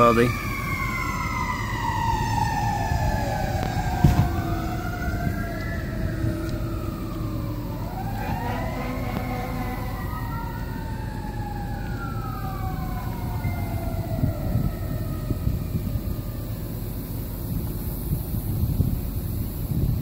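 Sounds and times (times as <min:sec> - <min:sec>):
emergency vehicle sirens wailing: 0:00.0 - 0:20.0
thump: 0:04.0 - 0:04.5.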